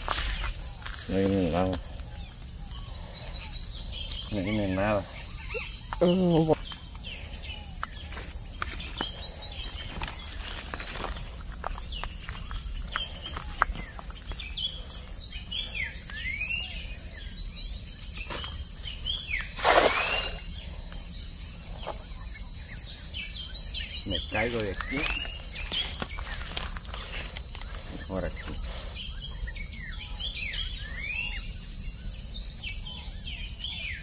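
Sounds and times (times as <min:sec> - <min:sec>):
birds chirping: 0:00.0 - 0:34.0
footstep clicks: 0:07.8 - 0:14.8, 0:24.7 - 0:28.7
cast net splashing into water: 0:19.6 - 0:20.4.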